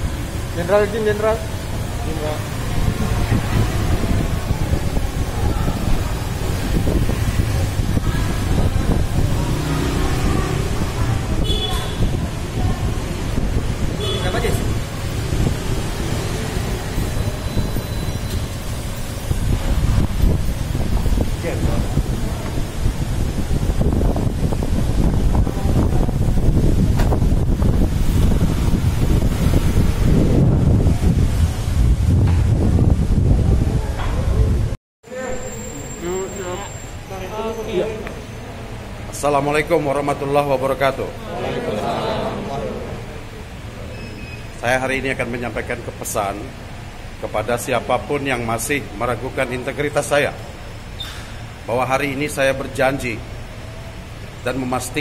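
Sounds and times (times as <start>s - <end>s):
wind buffeting microphone: 1.7s - 17.8s, 18.4s - 34.8s.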